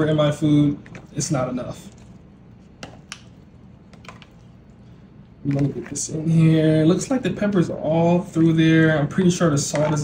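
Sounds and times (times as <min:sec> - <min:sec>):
wooden spatula stirring thick mixture: 0:00.0 - 0:04.8, 0:05.4 - 0:07.6.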